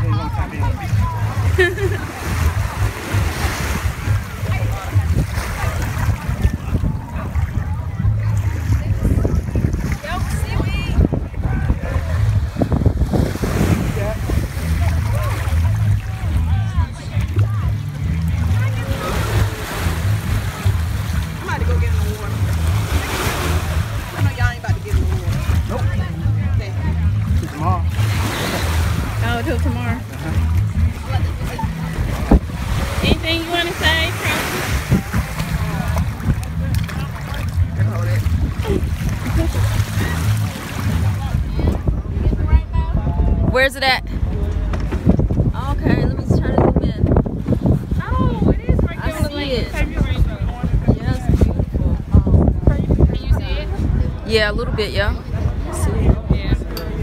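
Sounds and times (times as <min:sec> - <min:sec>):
water splashing around legs: 0:00.0 - 0:41.9
small waves washing onto beach: 0:00.0 - 0:42.4
faint voices: 0:00.0 - 0:57.0
wind buffeting microphone: 0:00.0 - 0:57.0.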